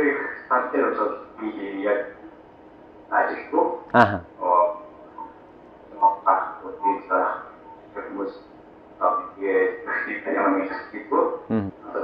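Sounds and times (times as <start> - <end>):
man speaking over video call: 3.4 - 4.8.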